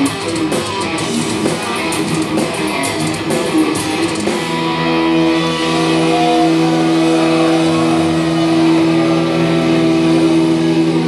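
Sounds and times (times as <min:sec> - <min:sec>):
distorted guitar chord ringing: 0:00.0 - 0:11.0
guitar feedback note: 0:00.0 - 0:11.0.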